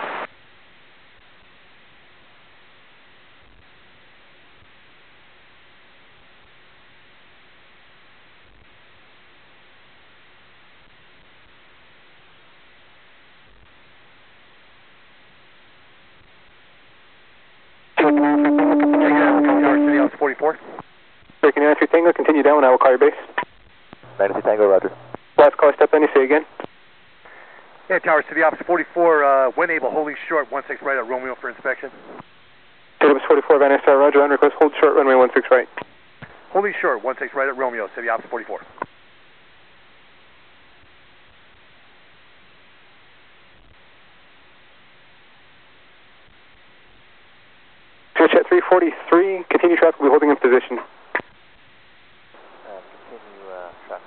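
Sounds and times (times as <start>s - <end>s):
radio hiss: 0.0s - 0.3s, 17.8s - 38.9s, 45.8s - 54.0s
steady tone under voice: 18.0s - 20.6s, 24.0s - 25.1s, 52.4s - 54.0s
radio transmission: 18.0s - 20.8s, 21.4s - 32.3s, 33.0s - 38.9s, 48.2s - 51.4s, 52.3s - 54.0s.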